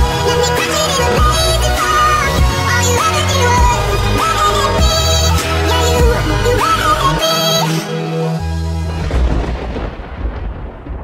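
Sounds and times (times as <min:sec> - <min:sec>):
deep thunder-like rumble: 0:08.8 - 0:11.0.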